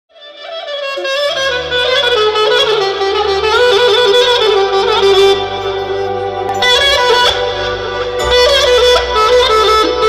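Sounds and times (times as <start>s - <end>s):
clarinet playing fast melody: 0.1s - 10.0s
low keyboard notes: 1.0s - 10.0s.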